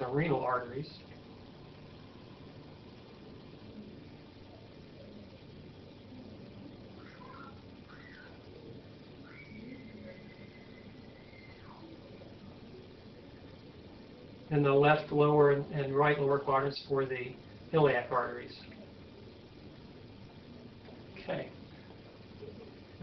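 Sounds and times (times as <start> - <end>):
faint steady hiss: 0.0 - 23.0
faint high whistle-like tones: 2.0 - 13.6.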